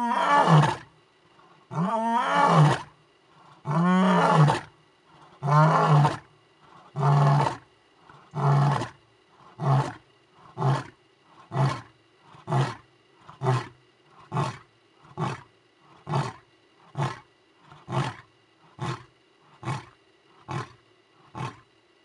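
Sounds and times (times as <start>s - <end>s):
lion roaring and grunting: 3.5s - 21.6s.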